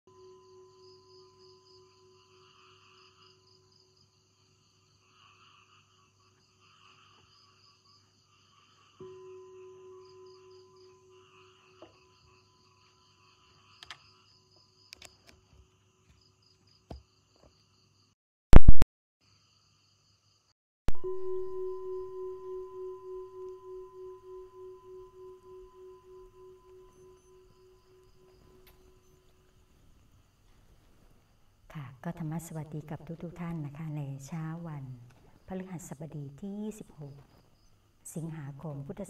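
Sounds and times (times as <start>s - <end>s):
soft ringing tone: 0.1s - 3.2s, 9.0s - 12.6s, 20.9s - 29.5s
insects chirring: 0.2s - 18.1s, 21.2s - 39.0s.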